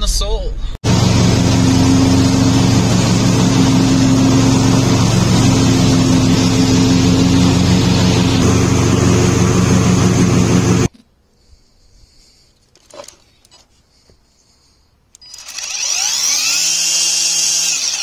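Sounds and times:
cutting deck whirring: 0.8 - 10.9, 15.1 - 18.0
riding lawn mower engine running: 0.8 - 10.9.

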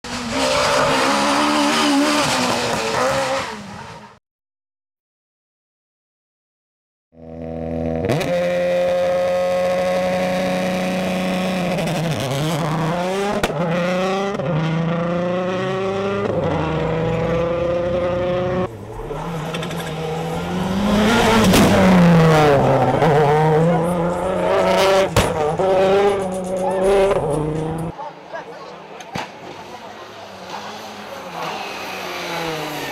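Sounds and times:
rally car engine accelerating: 0.1 - 4.1, 7.2 - 28.0, 29.5 - 32.9.

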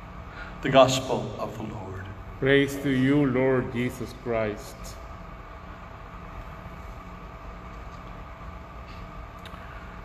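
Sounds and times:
room tone hum and hiss: 0.0 - 10.0.

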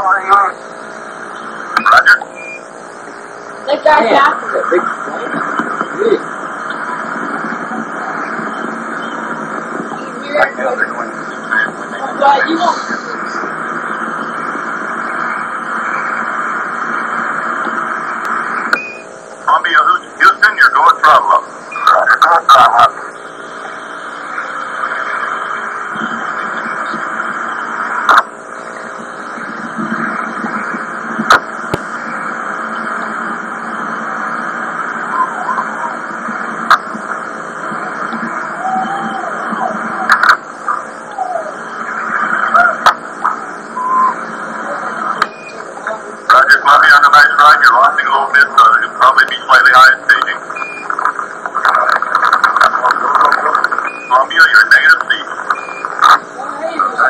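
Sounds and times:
radio static hiss: 0.0 - 57.0
unintelligible voice fragments: 19.4 - 23.1, 44.6 - 50.5, 51.5 - 57.0
loud crackles: 34.4 - 40.8, 44.1 - 56.4.

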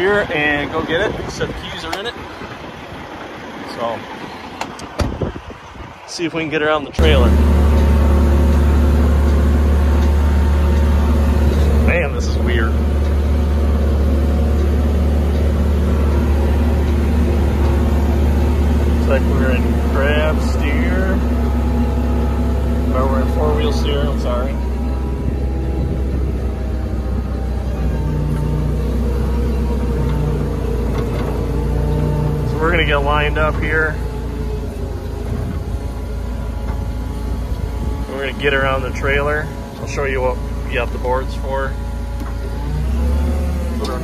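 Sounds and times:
crane engine idling: 7.0 - 44.0.

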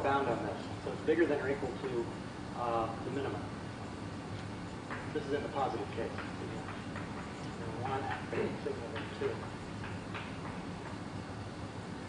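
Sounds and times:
chalk tapping on blackboard: 6.0 - 7.3, 8.1 - 11.0.

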